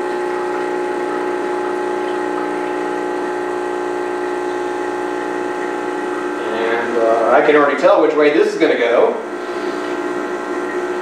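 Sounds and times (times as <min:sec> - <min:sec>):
espresso machine pump humming: 0:00.0 - 0:11.0.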